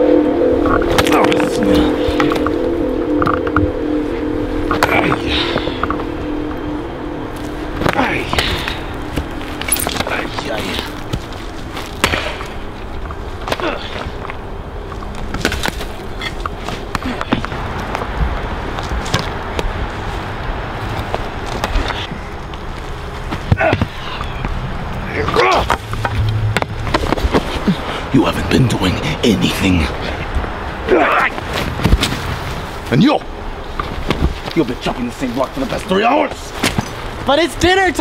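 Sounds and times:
axe chopping wood: 12.0 - 12.5.

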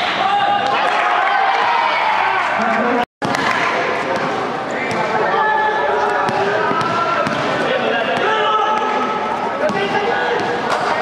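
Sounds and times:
basketball bouncing on a court: 6.2 - 8.3, 9.6 - 10.6.

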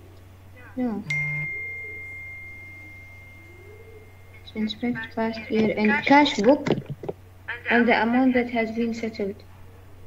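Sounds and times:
high ding: 1.1 - 4.6.

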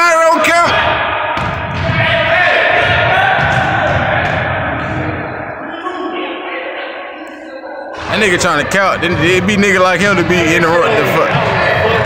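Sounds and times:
distant voices of players: 0.8 - 12.0.

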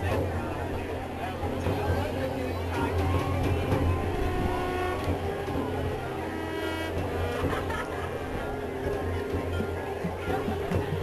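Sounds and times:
marching band holding chords: 0.0 - 11.0.

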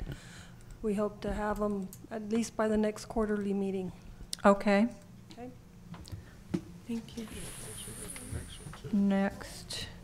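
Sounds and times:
faint room murmur: 0.0 - 10.0
person speaking: 6.9 - 9.7.

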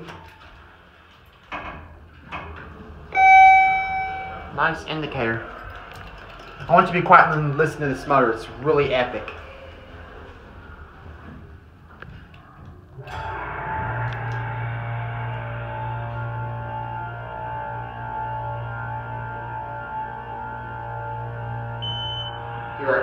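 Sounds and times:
elevator pump motor humming: 2.7 - 11.4.

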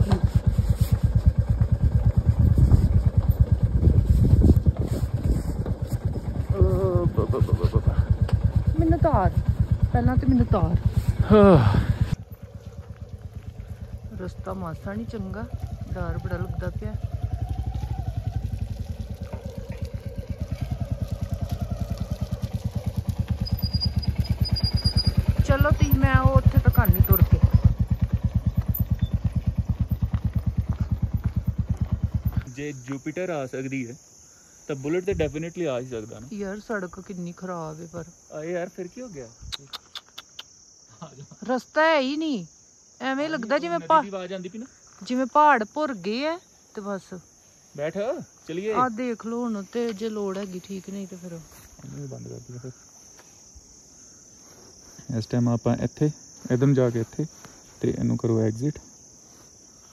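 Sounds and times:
motorcycle engine at low revs: 0.0 - 33.1
insects droning: 0.0 - 59.9
man talking: 55.1 - 58.8.

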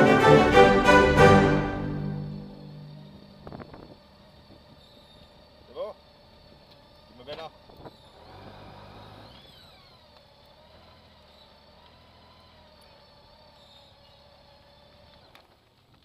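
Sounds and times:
motorcycle engine humming: 0.0 - 15.9.

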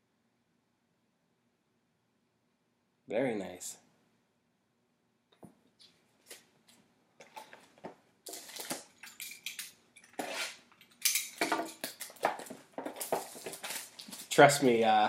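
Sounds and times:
plastic and foil packs crinkling: 7.2 - 15.0.

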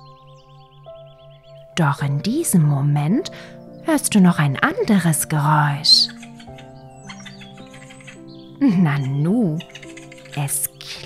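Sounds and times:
soft background music: 0.0 - 11.0
high chirping squeaks: 5.8 - 10.8.

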